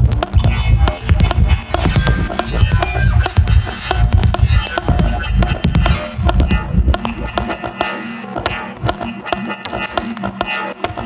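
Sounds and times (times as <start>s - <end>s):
electronic music with sharp clicks: 0.0s - 11.0s.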